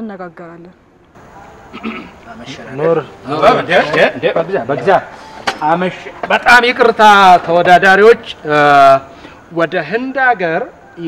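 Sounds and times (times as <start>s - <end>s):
woman speaking: 0.0s - 0.8s.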